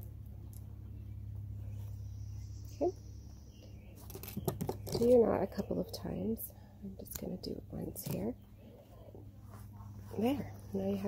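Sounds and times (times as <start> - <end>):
steady low hum: 0.0 - 11.0
leather rustling: 8.1 - 11.0.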